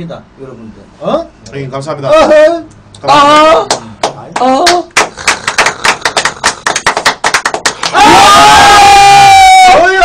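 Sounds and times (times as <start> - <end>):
men clapping rapidly: 3.4 - 8.4.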